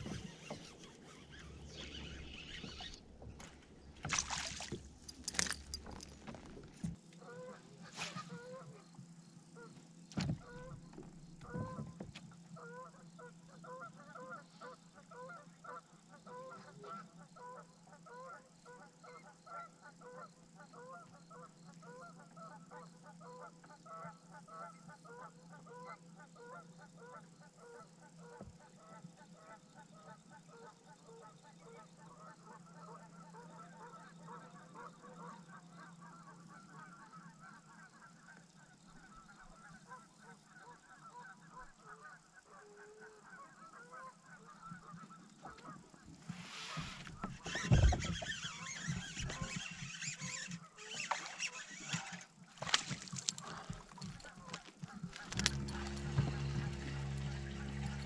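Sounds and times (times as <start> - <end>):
chorus of animal calls: 12.6 - 58.0
steady low hum: 53.6 - 58.0.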